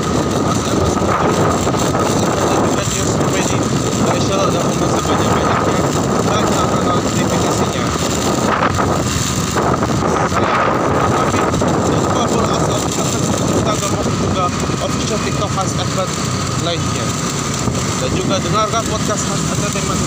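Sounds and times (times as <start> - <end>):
motorcycle engine running: 0.0 - 20.0
wind and road noise: 0.0 - 20.0.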